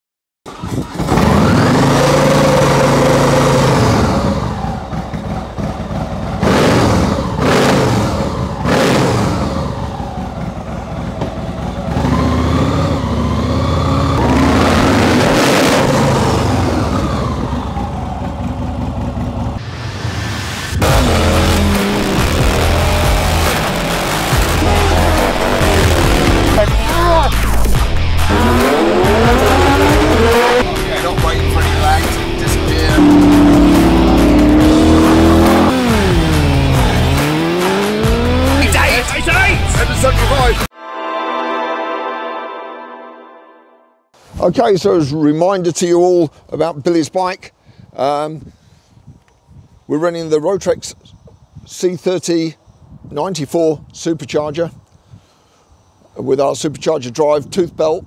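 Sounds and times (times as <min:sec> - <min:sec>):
vehicle engines revving past: 0:00.8 - 0:17.8, 0:19.2 - 0:26.7, 0:28.0 - 0:39.0
music with steady beat: 0:21.8 - 0:38.7.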